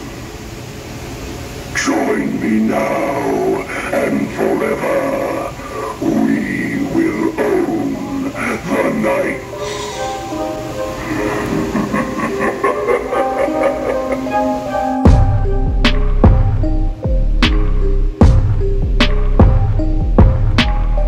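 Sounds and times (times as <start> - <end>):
recorded voice through small speaker: 1.7 - 9.5
music: 4.1 - 21.0.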